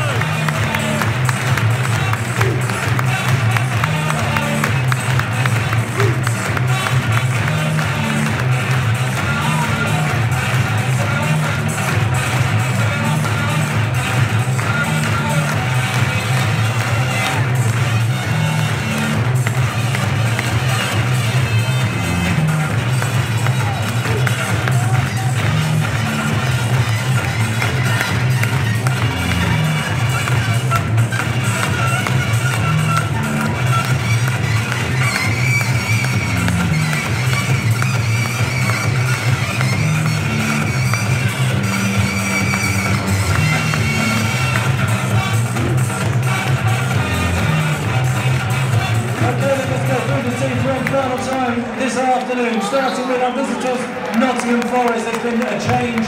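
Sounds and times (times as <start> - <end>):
crowd noise: 0.0 - 56.0
music over public address: 0.0 - 56.0.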